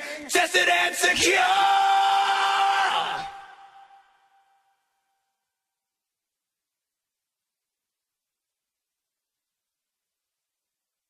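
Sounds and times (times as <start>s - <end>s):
man singing a long rock note: 0.0s - 3.8s.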